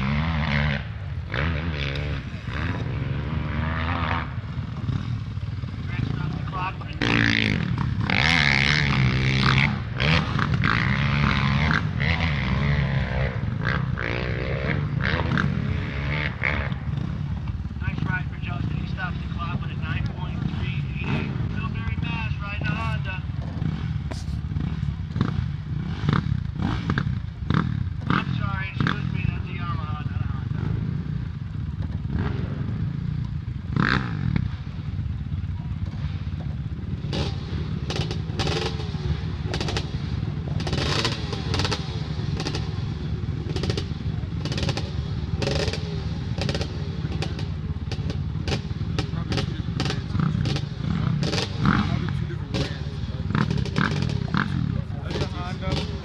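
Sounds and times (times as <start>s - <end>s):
dirt bike engine running: 0.0s - 56.0s.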